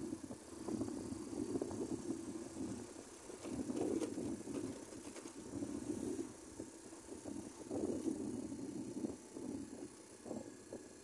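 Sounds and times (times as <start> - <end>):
motorcycle engine running: 0.0 - 11.0
road noise: 0.0 - 11.0
wind noise: 0.0 - 11.0.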